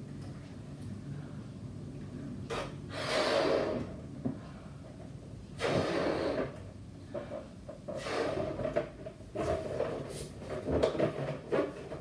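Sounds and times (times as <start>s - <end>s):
person blowing into balloon: 2.9s - 3.9s, 5.6s - 6.6s, 8.0s - 8.6s.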